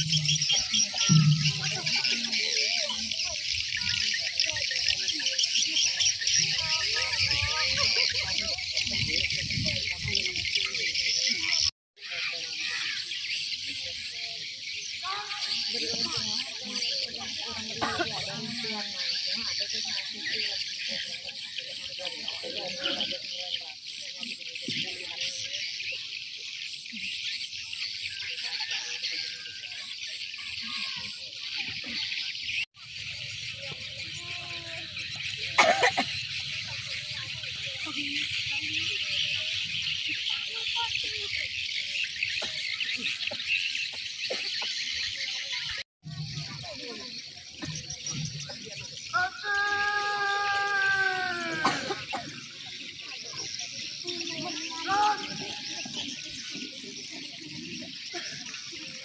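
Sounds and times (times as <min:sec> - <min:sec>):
faint voices: 0:00.0 - 0:59.0
insects chirring: 0:29.4 - 0:59.0.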